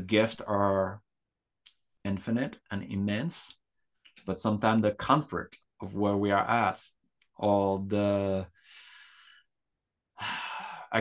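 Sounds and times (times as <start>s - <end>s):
man speaking: 0.0s - 1.0s, 2.0s - 3.6s, 4.2s - 8.5s
man breathing: 8.5s - 11.0s.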